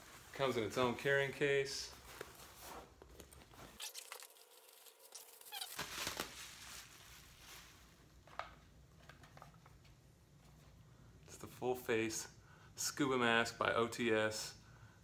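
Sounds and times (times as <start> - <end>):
plastic bag crinkling: 3.7 - 7.9.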